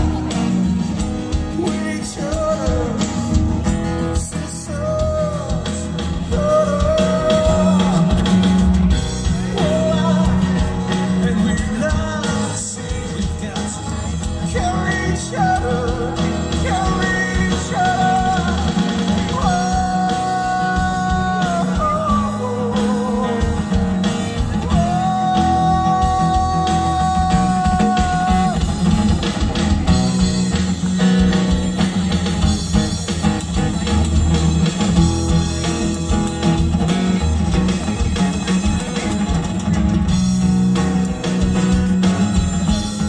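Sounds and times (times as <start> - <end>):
acoustic guitar: 0.0 - 43.0
man singing: 1.4 - 29.0.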